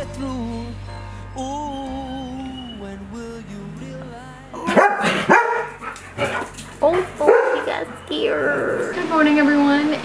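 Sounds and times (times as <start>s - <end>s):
puppy barking high yaps: 4.6s - 8.0s.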